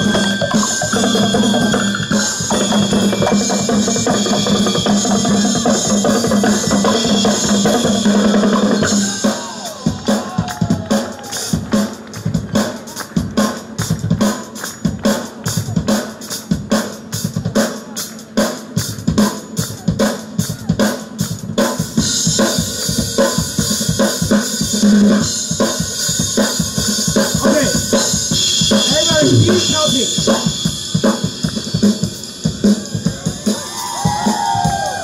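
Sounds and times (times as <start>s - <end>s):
rapid drum strokes: 0.0s - 34.8s
person speaking into a microphone: 28.9s - 30.2s.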